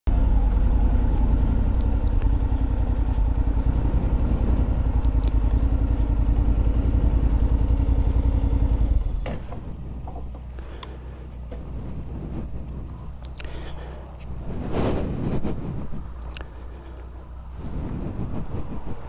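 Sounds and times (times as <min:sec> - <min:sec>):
motorcycle engine idling: 0:00.1 - 0:14.7, 0:15.6 - 0:18.3
small clicks: 0:05.0 - 0:05.6, 0:07.9 - 0:08.3, 0:12.6 - 0:13.5.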